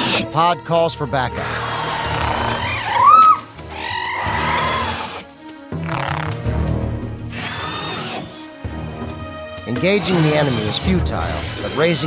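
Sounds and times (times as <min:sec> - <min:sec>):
creature cries: 0:00.0 - 0:00.4, 0:01.4 - 0:06.4, 0:07.3 - 0:08.5, 0:09.7 - 0:12.0
background music: 0:00.0 - 0:12.0.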